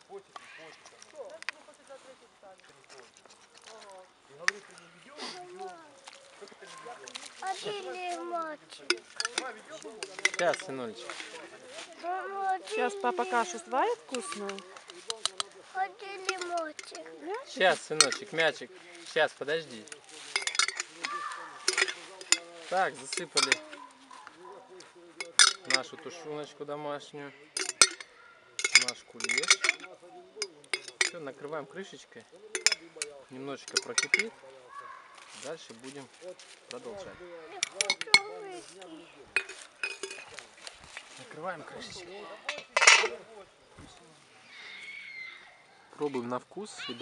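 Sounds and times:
child talking: 5.3 - 8.7, 12.0 - 14.6, 15.7 - 17.5, 21.1 - 21.6, 37.4 - 39.2
metal spoon clicking on glass jar: 8.9 - 10.7, 20.4 - 21.1, 23.2 - 23.7, 25.2 - 25.8, 27.6 - 31.2, 32.6 - 34.3, 37.6 - 38.3.

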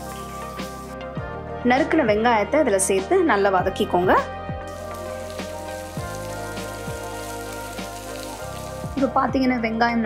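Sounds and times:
onions sizzling in oil: 0.0 - 1.0, 4.7 - 9.5
background music with beat: 0.0 - 1.8, 3.6 - 9.4.

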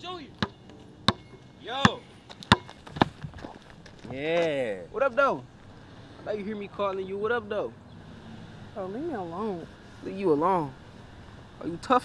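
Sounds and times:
basketball bouncing on concrete: 0.4 - 4.0.

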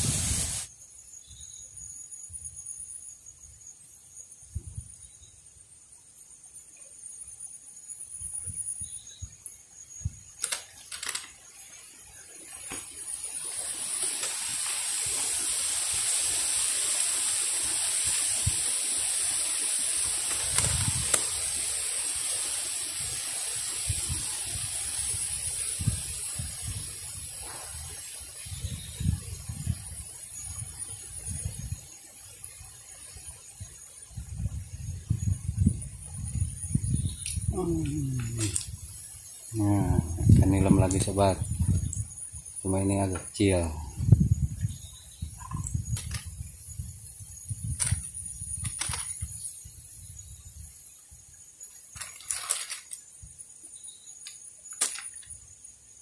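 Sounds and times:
rushing hiss: 0.0 - 0.8, 9.8 - 56.0
faint high whine: 0.0 - 52.1.

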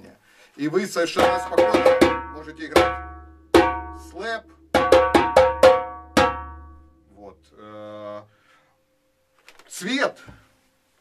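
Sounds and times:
djembe hand slaps: 1.2 - 4.0, 4.6 - 6.7.

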